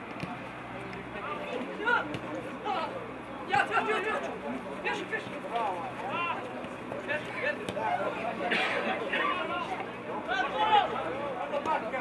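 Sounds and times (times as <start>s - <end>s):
scattered chatter: 0.0s - 12.0s.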